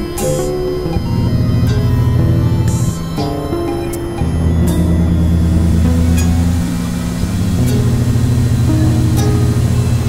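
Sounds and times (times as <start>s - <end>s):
synthesizer drone music: 0.0s - 10.0s.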